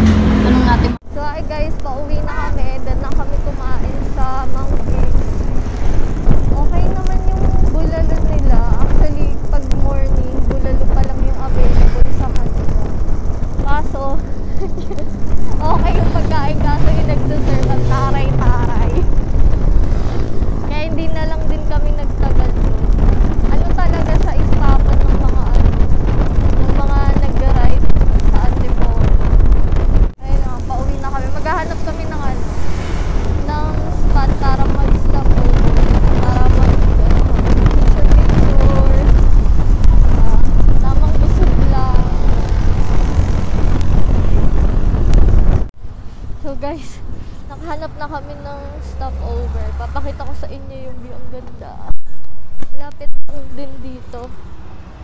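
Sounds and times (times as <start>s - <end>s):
motorcycle road noise: 0.0s - 55.0s
wind buffeting microphone: 0.0s - 55.0s
person speaking: 13.6s - 19.1s, 20.7s - 22.6s, 30.2s - 32.4s, 33.3s - 39.1s, 46.4s - 52.0s.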